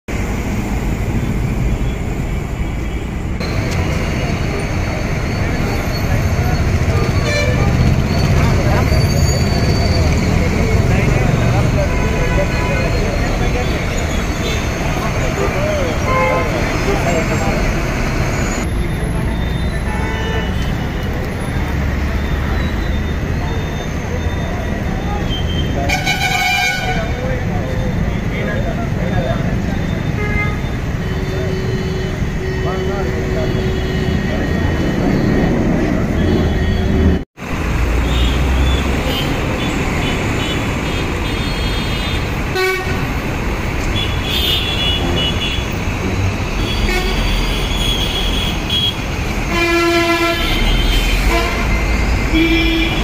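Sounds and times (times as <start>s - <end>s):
traffic noise: 0.0s - 53.0s
crowd talking: 3.5s - 30.2s, 30.8s - 36.8s
vehicle horns honking: 5.4s - 17.6s, 19.3s - 21.0s, 25.1s - 28.0s, 29.8s - 37.2s, 38.0s - 43.2s, 43.8s - 45.8s, 46.5s - 53.0s.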